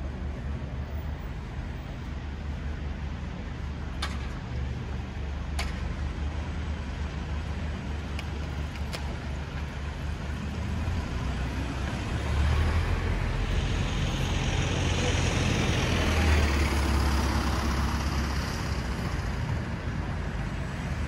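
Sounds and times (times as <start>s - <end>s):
traffic hum: 0.0s - 21.0s.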